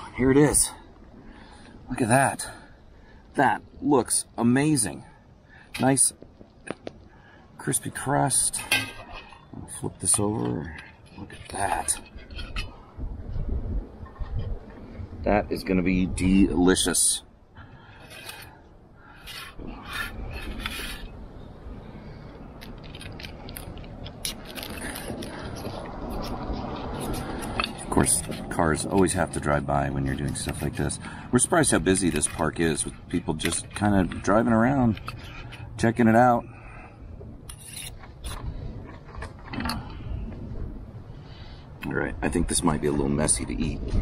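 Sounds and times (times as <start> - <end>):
steady low rumble: 0.0 - 44.0
passing car rumble: 23.8 - 29.0
knife scraping metal plate: 37.5 - 38.0.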